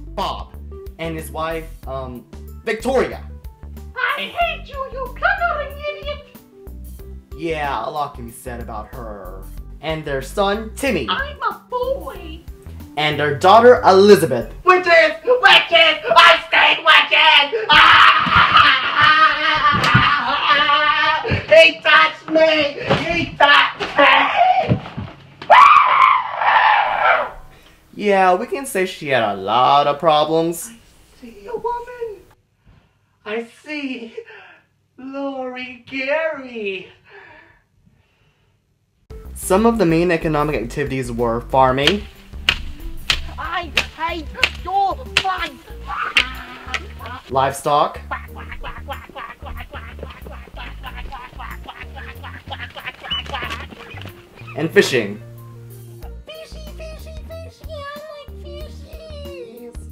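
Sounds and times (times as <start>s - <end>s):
person screaming: 15.4s - 21.4s, 25.5s - 27.3s, 45.4s - 47.3s
ducks quacking: 45.4s - 54.9s.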